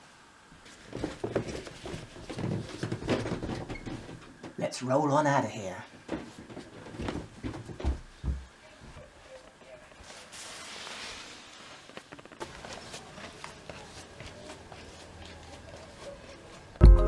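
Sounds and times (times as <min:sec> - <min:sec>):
footsteps in a hallway: 0:00.5 - 0:04.6, 0:05.8 - 0:10.3, 0:11.9 - 0:17.0.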